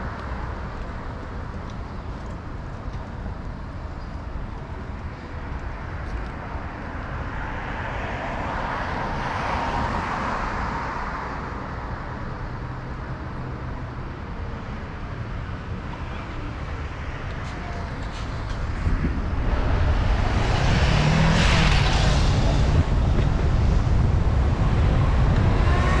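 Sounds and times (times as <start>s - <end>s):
street traffic noise: 0.0s - 26.0s
car passing close by: 18.2s - 26.0s.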